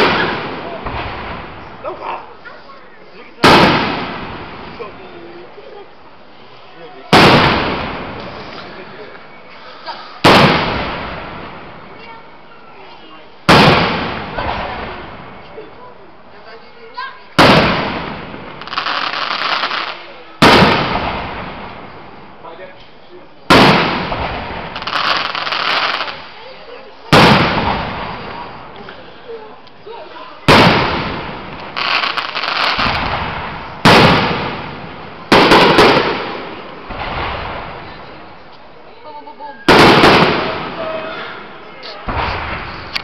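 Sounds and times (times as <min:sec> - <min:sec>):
firework bursts with echoing rumble: 0:00.0 - 0:01.8, 0:03.4 - 0:04.8, 0:07.1 - 0:08.4, 0:10.2 - 0:11.8, 0:13.5 - 0:15.4, 0:17.4 - 0:22.3, 0:23.5 - 0:26.3, 0:27.1 - 0:28.7, 0:30.5 - 0:38.1, 0:39.7 - 0:40.9, 0:42.1 - 0:43.0
firework shells bursting: 0:30.5 - 0:38.0
dense crackling: 0:30.5 - 0:38.7.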